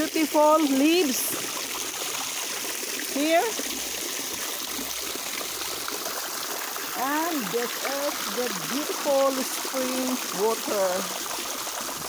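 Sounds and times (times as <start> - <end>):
water pouring and splashing: 0.0 - 12.0.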